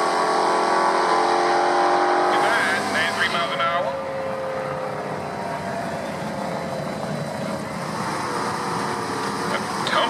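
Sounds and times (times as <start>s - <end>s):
car engine running at low speed: 0.0s - 10.0s.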